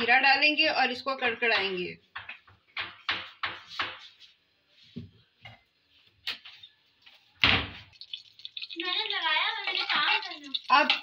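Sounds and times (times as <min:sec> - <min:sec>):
seeds sizzling in hot oil: 0:07.9 - 0:11.0.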